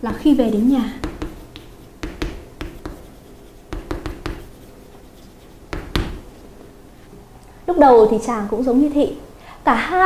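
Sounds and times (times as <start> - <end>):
pen writing taps and scratches: 1.0 - 6.2.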